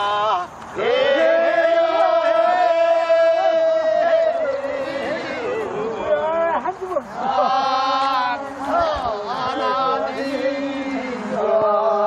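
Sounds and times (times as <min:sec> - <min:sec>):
group of voices chanting: 0:00.0 - 0:12.0.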